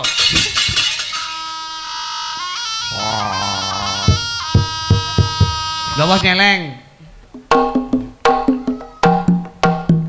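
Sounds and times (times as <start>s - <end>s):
drum strokes: 2.9s - 6.3s.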